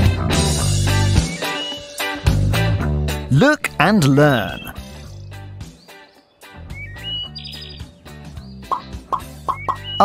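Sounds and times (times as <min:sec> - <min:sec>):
cartoon jingle music: 0:03.3 - 0:04.8.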